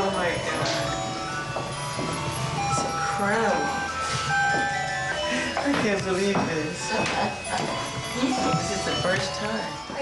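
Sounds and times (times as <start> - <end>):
chiming music: 0.0 - 10.0.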